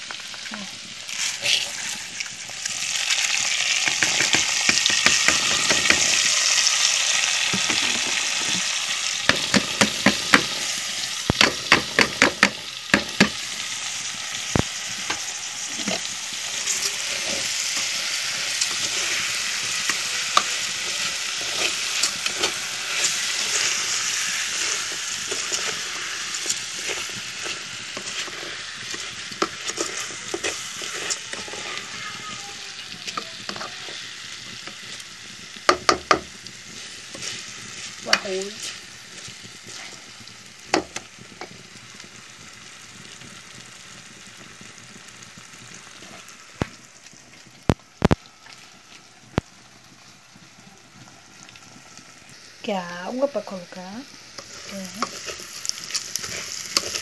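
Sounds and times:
sausage and rice sizzling: 0:00.0 - 0:57.0.

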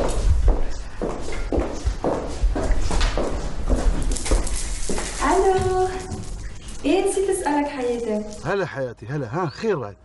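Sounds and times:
footsteps on tiled floor: 0:00.0 - 0:08.4.

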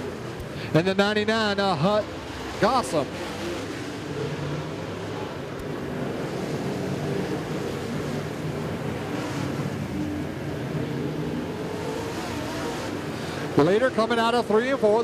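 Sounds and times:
race car engines droning: 0:00.0 - 0:15.0.

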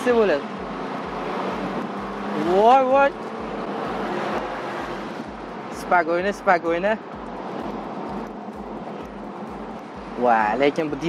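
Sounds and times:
road and engine noise in car: 0:00.0 - 0:11.0
person's voice: 0:02.4 - 0:03.2.

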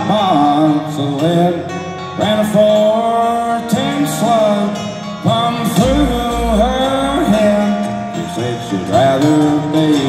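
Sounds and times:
acoustic guitars: 0:00.0 - 0:10.0
upright bass: 0:05.3 - 0:10.0.

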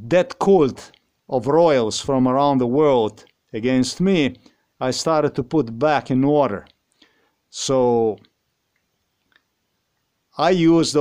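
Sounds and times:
man's voice: 0:00.0 - 0:06.7, 0:07.6 - 0:08.2, 0:10.4 - 0:11.0.

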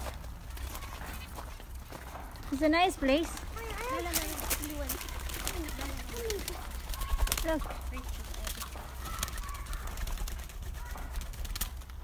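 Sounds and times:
bird calls: 0:02.1 - 0:11.8.

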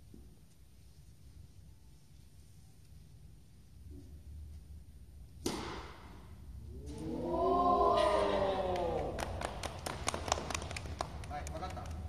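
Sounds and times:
children saying ooh: 0:06.7 - 0:09.2
people clapping: 0:07.9 - 0:12.0.

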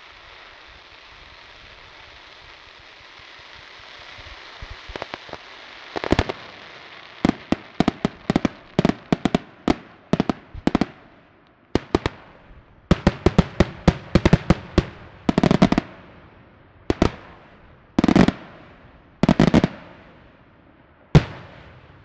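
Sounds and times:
firework bangs: 0:00.0 - 0:16.2, 0:16.8 - 0:20.5, 0:21.1 - 0:22.0
firework crackle: 0:00.0 - 0:22.0.

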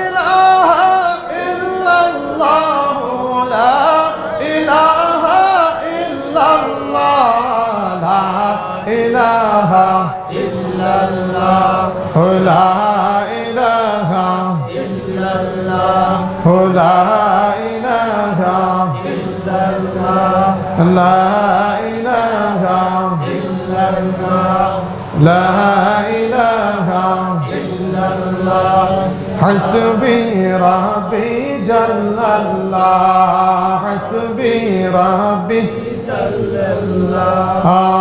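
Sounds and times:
man chanting: 0:00.0 - 0:38.0.

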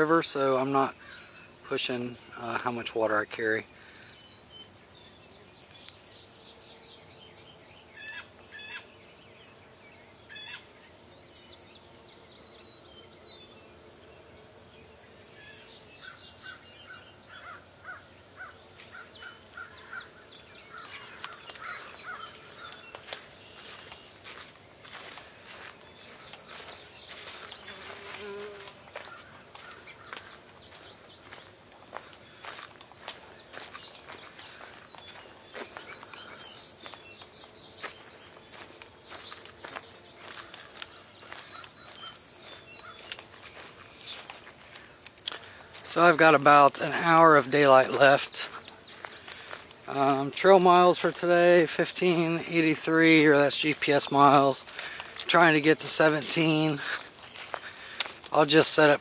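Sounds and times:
insects droning: 0:00.0 - 0:59.0
bird chirps: 0:03.1 - 0:13.7, 0:15.2 - 0:59.0
bird trill: 0:04.1 - 0:08.9, 0:10.3 - 0:10.7, 0:15.3 - 0:27.8, 0:33.4 - 0:44.3
footsteps on dry leaves: 0:20.7 - 0:46.5, 0:47.4 - 0:50.4, 0:52.2 - 0:59.0.

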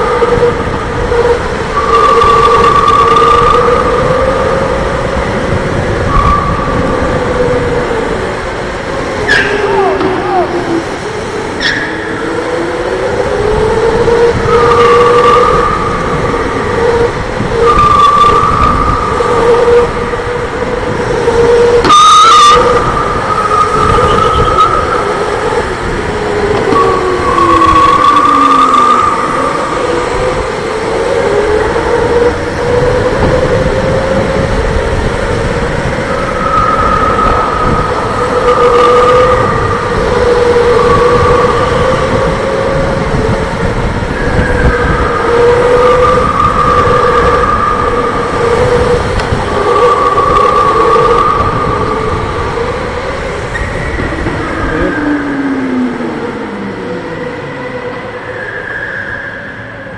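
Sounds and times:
electric go-kart motor whining: 0:00.0 - 0:59.8
kart rumbling on track: 0:00.0 - 0:59.9.

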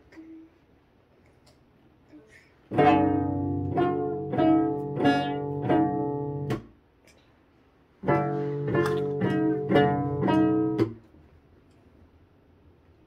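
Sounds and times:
cello plucked notes: 0:02.7 - 0:06.7, 0:08.0 - 0:11.1.

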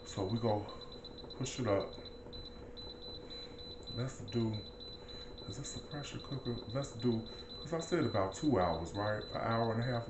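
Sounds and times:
faint high-pitched whine: 0:00.0 - 0:10.0
faint low hum: 0:00.0 - 0:10.0.

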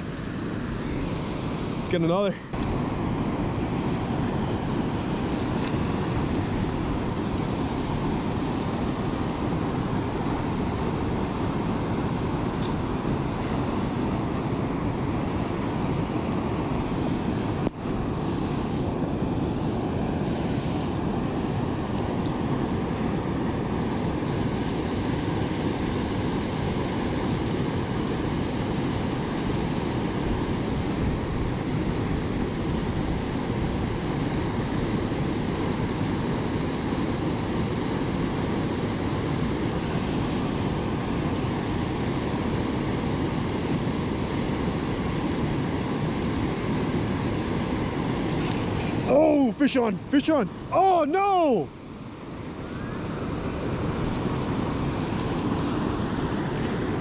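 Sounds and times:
water rushing over dam spillway: 0:00.0 - 0:57.0.

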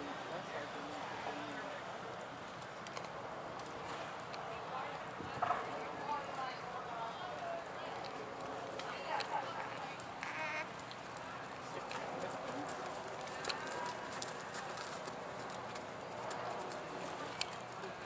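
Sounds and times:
distant voices: 0:00.0 - 0:18.0.

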